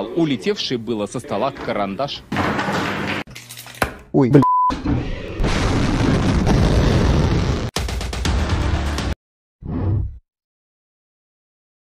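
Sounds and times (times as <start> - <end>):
missile launch roar: 4.8 - 7.8.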